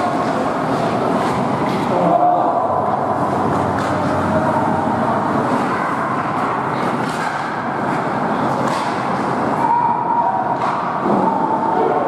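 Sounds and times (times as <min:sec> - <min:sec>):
skates scraping ice: 0:00.1 - 0:02.1
faint hockey stick clacks: 0:03.8 - 0:04.1, 0:06.8 - 0:08.0, 0:08.6 - 0:09.2.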